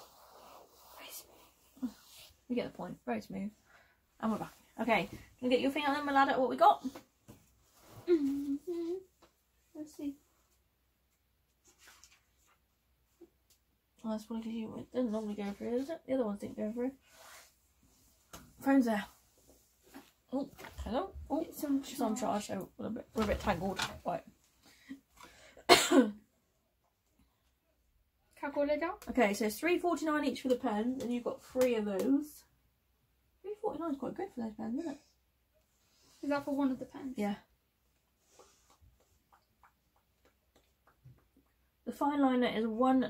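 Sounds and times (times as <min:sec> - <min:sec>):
woman humming: 0:08.0 - 0:09.1
person coughing: 0:25.6 - 0:26.2.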